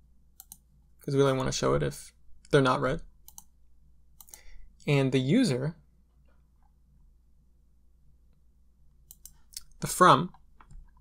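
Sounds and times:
computer mouse clicking: 0.4 - 0.7, 3.2 - 3.5, 4.2 - 4.5, 9.0 - 11.0.

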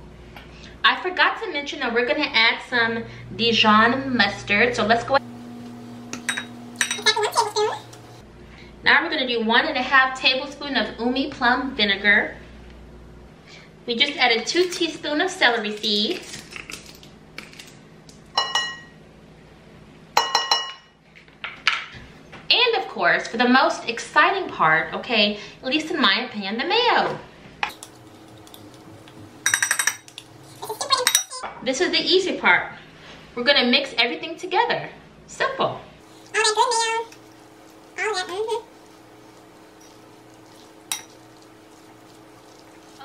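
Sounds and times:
faint steady hum: 0.0 - 13.9
glass jars clinking: 6.1 - 8.0, 29.4 - 31.4, 40.9 - 41.2
fork stirring mixture in bowl: 27.7 - 31.4, 36.0 - 43.0
fork clinking against bowl: 39.8 - 41.3.

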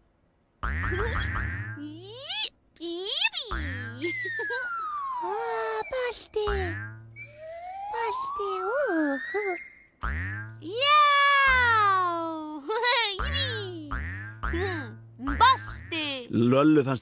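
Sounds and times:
springy cartoon boing thuds: 0.6 - 1.8, 6.4 - 7.2, 10.0 - 10.6, 13.2 - 16.1
cartoon rising glide: 4.0 - 9.8.

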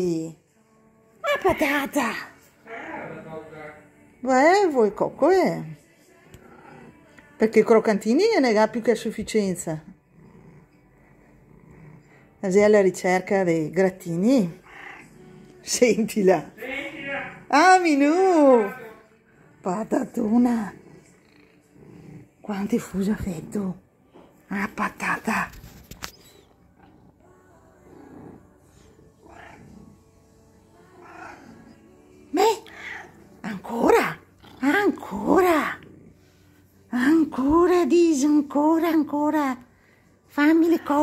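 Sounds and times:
cat purring: 0.0 - 41.0.

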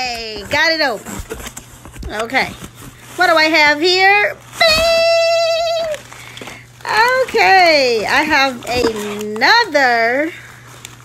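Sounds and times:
person speaking: 6.8 - 10.4.

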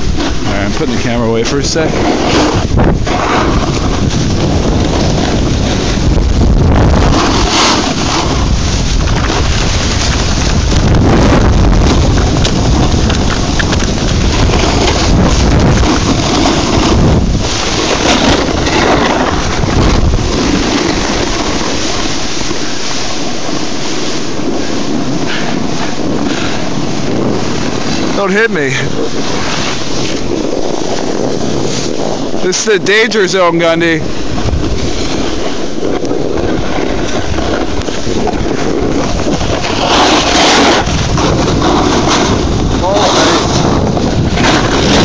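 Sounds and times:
wind buffeting microphone: 0.0 - 45.0.

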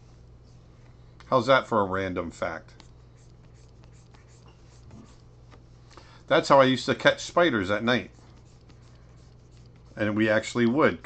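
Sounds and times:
low electrical hum: 0.0 - 11.0
stylus scratching on tablet: 2.7 - 5.4, 7.1 - 10.5.

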